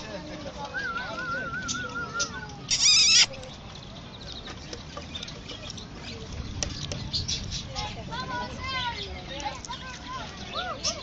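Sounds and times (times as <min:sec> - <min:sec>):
peacock calling: 0:01.0 - 0:03.4.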